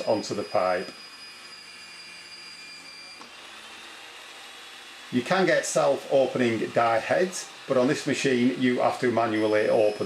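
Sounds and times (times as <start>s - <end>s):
pipe threading machine humming: 0.0s - 10.0s.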